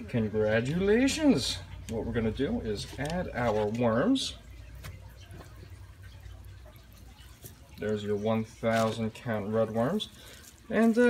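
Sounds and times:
low steady hum: 0.0 - 11.0
soft rustling with small ticks: 1.6 - 11.0.

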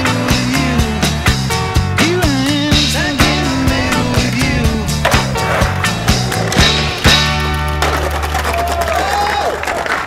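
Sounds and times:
music track: 2.7 - 7.7
skateboard rolling on pavement: 2.8 - 10.0
skateboard clacks: 5.0 - 10.0.

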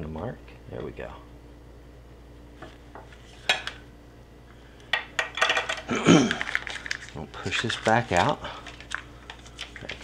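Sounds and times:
plastic bag crinkling: 6.1 - 10.0.

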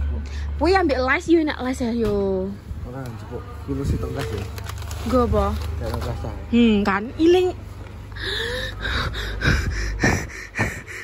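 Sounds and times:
low background rumble: 7.4 - 11.0
person laughing breathily: 8.2 - 11.0.

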